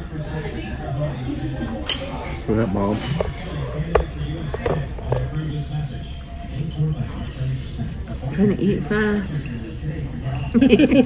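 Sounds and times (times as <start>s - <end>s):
murmur of voices: 0.0s - 11.0s
metal fork clinking on ceramic plate: 1.9s - 3.3s.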